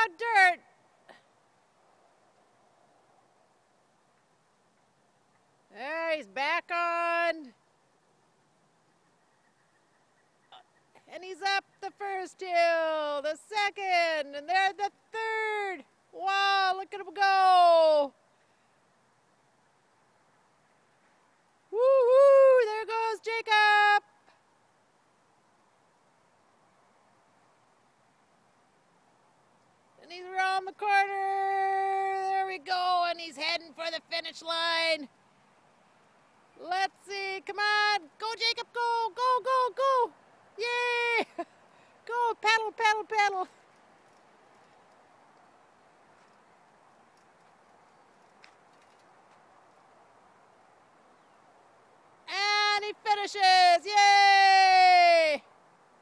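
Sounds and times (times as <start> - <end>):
faint outdoor background hiss: 0.0 - 56.0.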